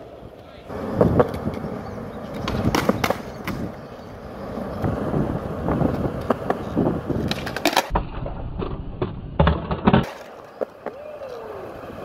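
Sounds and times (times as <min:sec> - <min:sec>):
skateboard clacks: 0:00.0 - 0:12.0
skateboard wheels rumbling: 0:00.0 - 0:12.0.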